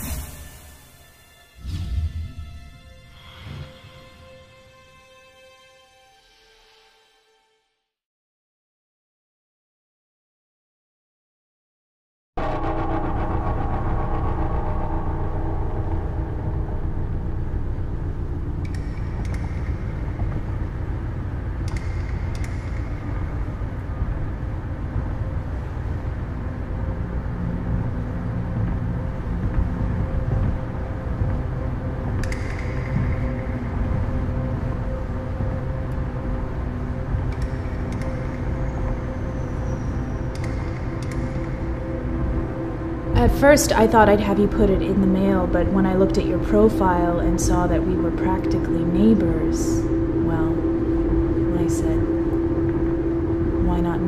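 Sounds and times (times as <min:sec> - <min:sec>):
musical drone: 0:00.0 - 0:07.8, 0:12.4 - 0:54.0.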